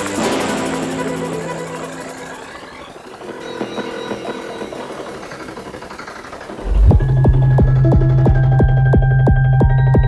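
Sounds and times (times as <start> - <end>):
layered synth texture: 0.0 - 9.5
kick drum and deep bass: 6.6 - 10.0.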